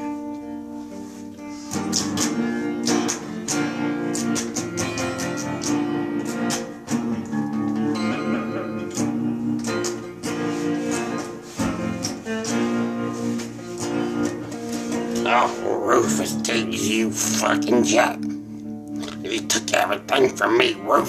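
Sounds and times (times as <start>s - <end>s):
guitar strumming chords: 0.0s - 21.0s.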